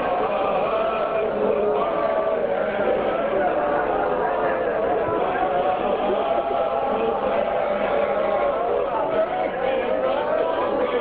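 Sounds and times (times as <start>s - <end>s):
crowd of men chanting: 0.0s - 11.0s.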